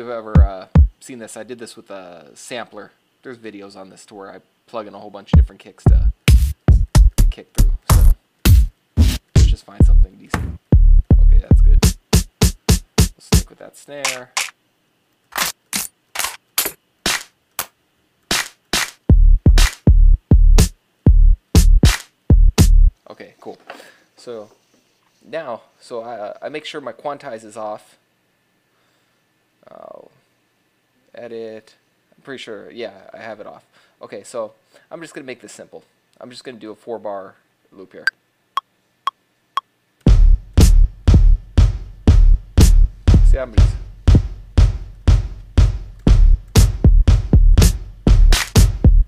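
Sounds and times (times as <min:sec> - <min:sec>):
deep booming kick drums: 0:00.4 - 0:00.9, 0:05.4 - 0:13.5, 0:19.1 - 0:22.9, 0:40.1 - 0:49.0
electronic snare hits: 0:07.9 - 0:09.6, 0:18.3 - 0:19.0, 0:19.6 - 0:19.8, 0:21.6 - 0:22.1, 0:45.6 - 0:46.9, 0:47.6 - 0:48.8.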